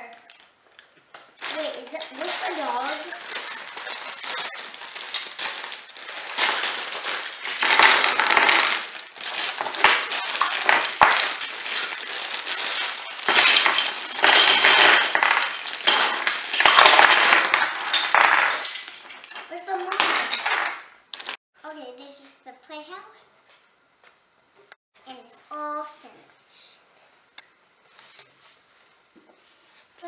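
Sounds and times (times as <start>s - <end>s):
plastic bags crinkling: 1.3s - 21.4s
plastic bricks clattering: 1.4s - 21.4s.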